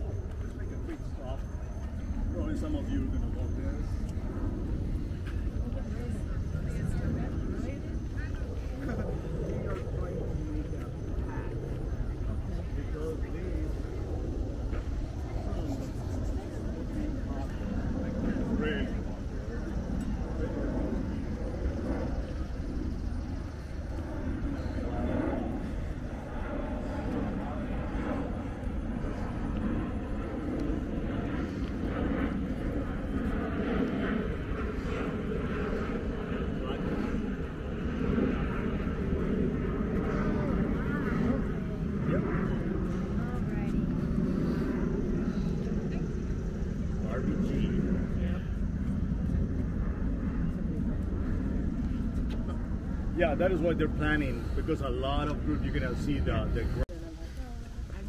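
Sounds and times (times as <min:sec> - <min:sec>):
steady low rumble: 0:00.0 - 0:58.0
people talking indistinctly: 0:52.3 - 0:58.0.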